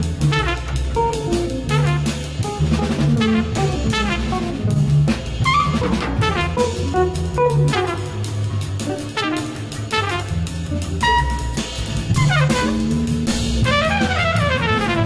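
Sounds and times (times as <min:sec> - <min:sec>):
cornet playing jazz lines: 0:00.0 - 0:15.0
drum kit and cymbals: 0:00.0 - 0:15.0
low bass notes: 0:00.0 - 0:15.0.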